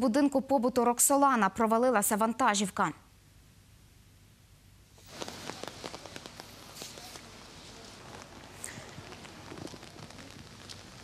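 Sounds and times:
rain on a wet street: 5.1 - 11.0.

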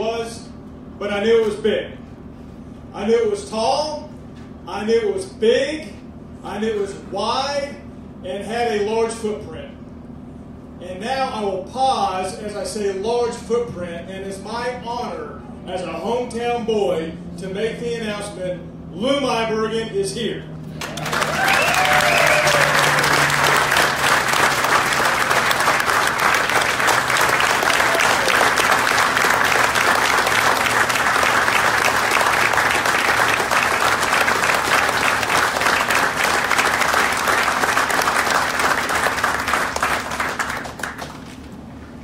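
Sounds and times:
audience applauding: 20.8 - 41.4.

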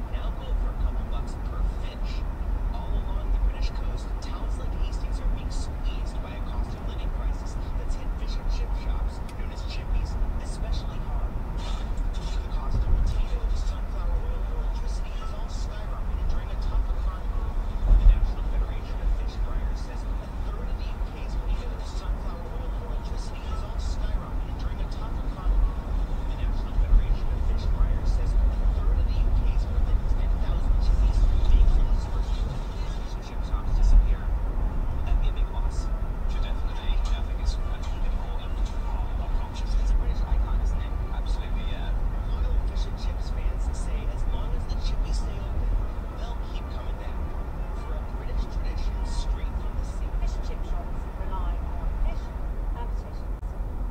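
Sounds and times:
car engine and tyres rumbling: 0.0 - 53.9.

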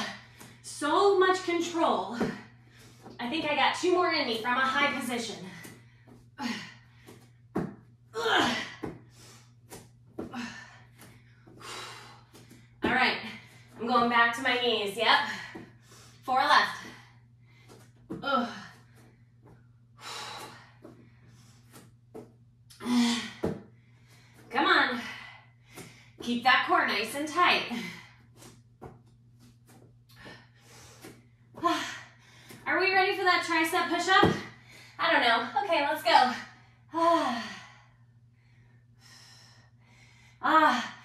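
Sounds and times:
woman breathing hard: 8.2 - 13.8, 15.2 - 21.8, 22.7 - 26.2, 30.1 - 32.6, 36.3 - 41.0.

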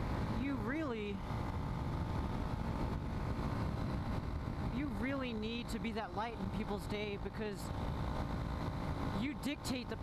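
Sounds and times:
motorcycle engine running: 0.0 - 10.0
wind buffeting a camera: 0.0 - 10.0.

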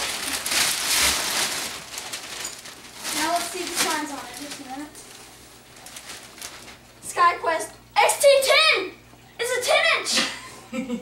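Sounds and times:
wrapping paper rustling: 0.0 - 7.0.

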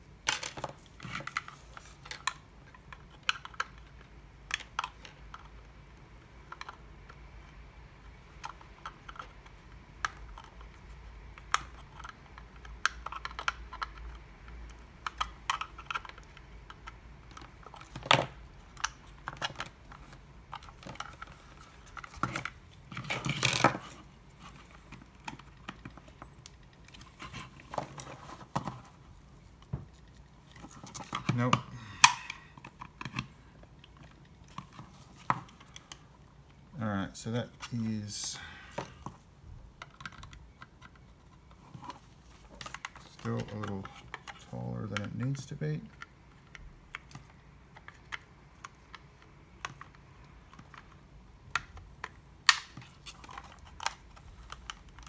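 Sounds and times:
plastic scraping and snapping: 8.0 - 36.6, 39.8 - 55.0.

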